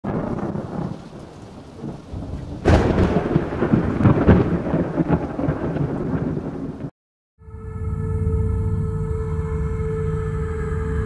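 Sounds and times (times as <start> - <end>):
thunderclap rolling into rumble: 0.0 - 6.9
rain hissing: 0.1 - 6.9.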